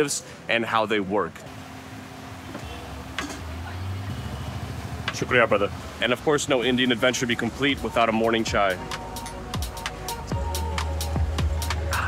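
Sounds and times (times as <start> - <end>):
street traffic hum: 0.0 - 12.0.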